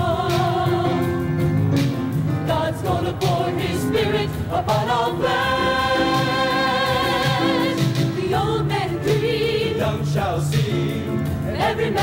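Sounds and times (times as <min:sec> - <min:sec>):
mixed choir singing gospel: 0:00.0 - 0:12.0.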